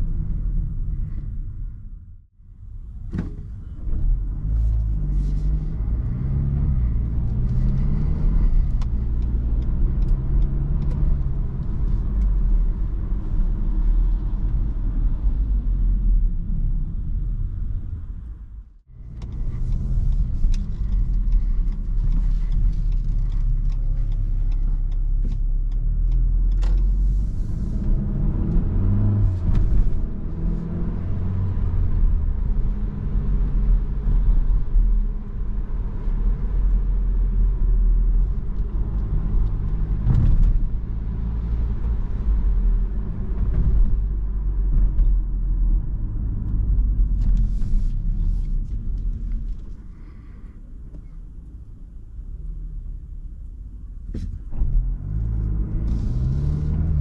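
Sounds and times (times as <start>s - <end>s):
car engine driving: 0.0s - 57.0s
road rumble: 0.0s - 57.0s.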